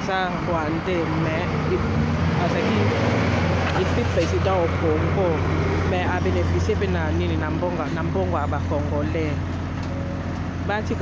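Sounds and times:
street traffic rumble: 0:00.0 - 0:11.0
woman talking: 0:02.4 - 0:03.0, 0:03.7 - 0:09.4, 0:10.7 - 0:11.0.

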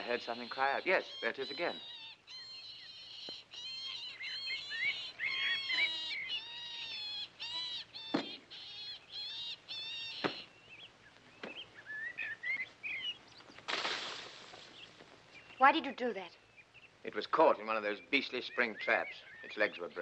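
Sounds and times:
faint chirps: 0:00.0 - 0:20.0.

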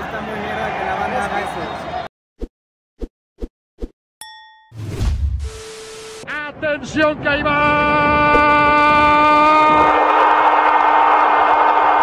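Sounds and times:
crowd roar: 0:07.6 - 0:12.0.

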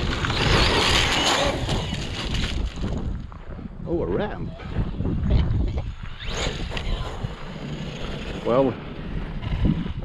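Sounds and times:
electric motor whirring: 0:00.0 - 0:02.6, 0:05.7 - 0:09.7
wind rumble on microphone: 0:00.0 - 0:10.0.

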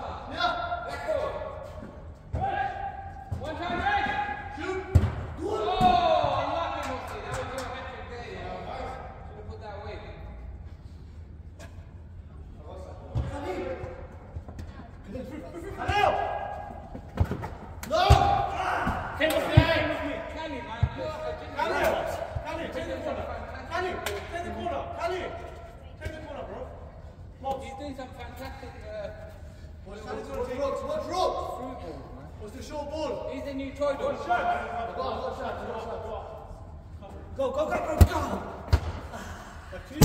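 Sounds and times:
players shouting: 0:02.3 - 0:07.4, 0:17.8 - 0:20.4.

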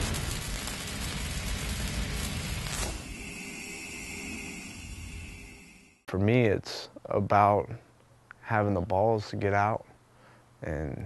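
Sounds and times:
low rumble: 0:00.0 - 0:06.0
noisy crackle: 0:00.0 - 0:06.0
falling swoosh: 0:01.9 - 0:06.1
high ringing tone: 0:02.8 - 0:06.1.

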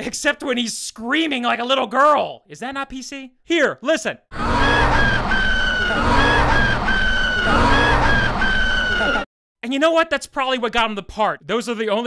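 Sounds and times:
low rumble: 0:04.4 - 0:09.2.

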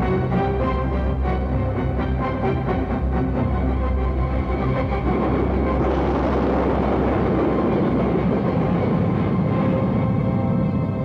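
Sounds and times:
jet engines roaring on takeoff: 0:04.1 - 0:11.0.

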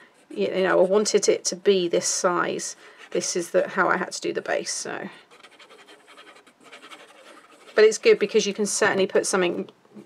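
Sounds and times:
glue bottle nozzle scratching card: 0:05.3 - 0:08.4.

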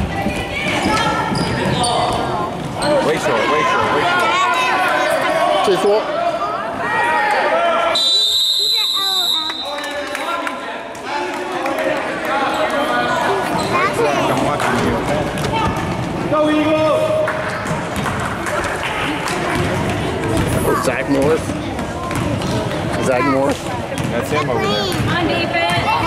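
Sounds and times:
spectators' voices echoing: 0:00.0 - 0:26.0
referee's whistle blast: 0:07.9 - 0:09.8.

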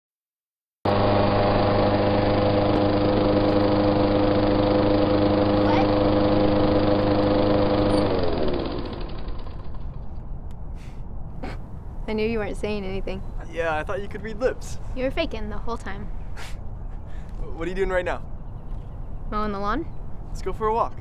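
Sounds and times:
lawn mower engine running: 0:00.9 - 0:10.2.

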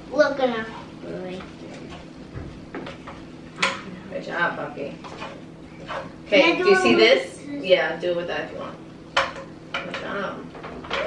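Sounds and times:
utensils clattering on frying pan: 0:05.0 - 0:06.5, 0:09.1 - 0:11.0.

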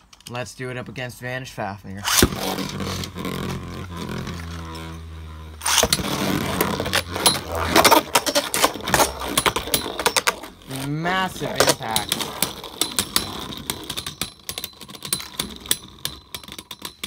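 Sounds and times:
spinning tops whirring: 0:02.0 - 0:17.0.

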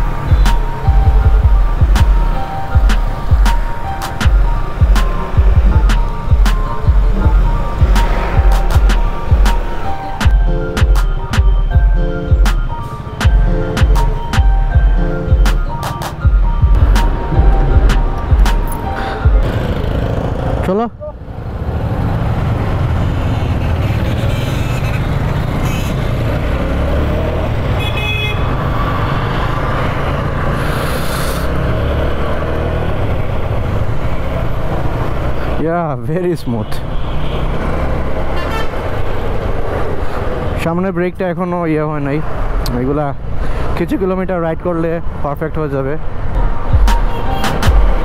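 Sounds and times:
background music with beat: 0:00.0 - 0:19.9, 0:46.4 - 0:48.0
rising sweep: 0:00.0 - 0:20.5
wind and road noise: 0:00.0 - 0:48.0.

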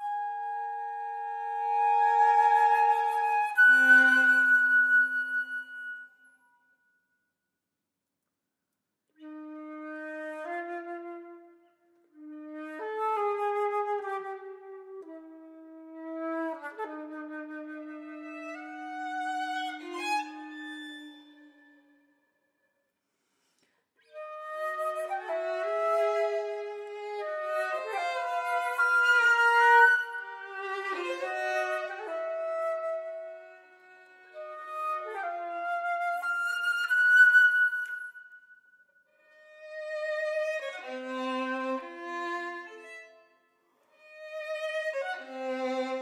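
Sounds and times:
flute and violin playing: 0:00.0 - 0:06.3, 0:15.9 - 0:21.9, 0:24.1 - 0:38.5, 0:39.3 - 0:43.2, 0:44.0 - 0:46.0.

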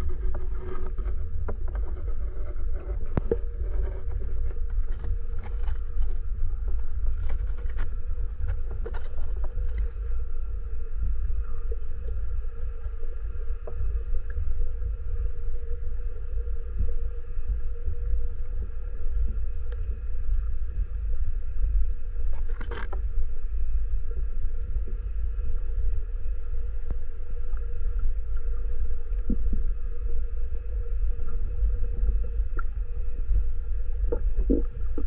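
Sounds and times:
faint steady hum: 0:00.0 - 0:35.0
underwater low rumble: 0:00.0 - 0:35.0.

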